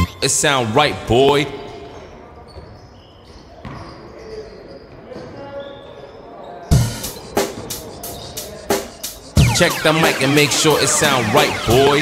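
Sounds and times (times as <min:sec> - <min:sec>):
hip-hop track: 0:06.7 - 0:12.0.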